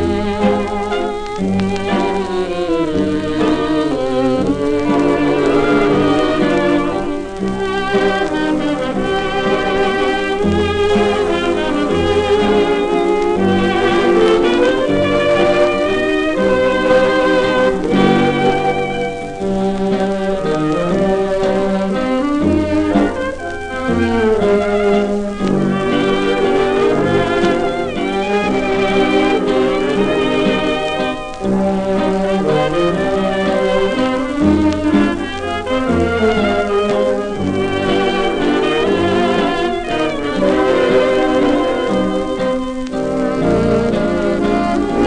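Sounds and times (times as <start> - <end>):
dance orchestra playing a waltz: 0.0 - 45.0
shellac record playback: 0.0 - 45.0.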